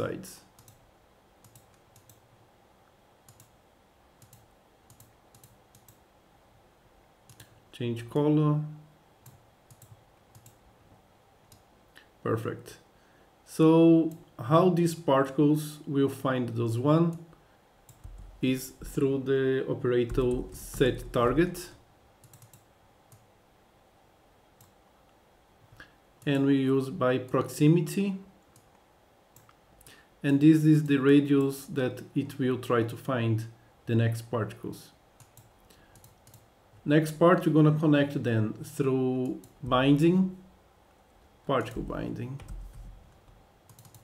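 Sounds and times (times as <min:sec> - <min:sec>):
computer mouse clicks: 0:00.6 - 0:00.8, 0:01.4 - 0:02.3, 0:03.2 - 0:03.6, 0:04.2 - 0:06.0, 0:07.2 - 0:07.6, 0:09.2 - 0:10.6, 0:11.5 - 0:11.7, 0:17.1 - 0:18.3, 0:22.2 - 0:23.3, 0:24.6 - 0:26.3, 0:28.4 - 0:29.6, 0:35.2 - 0:36.5, 0:43.6 - 0:44.0
faint computer mouse clicks: 0:03.2 - 0:03.5, 0:04.2 - 0:06.0, 0:07.3 - 0:07.6, 0:35.2 - 0:36.5.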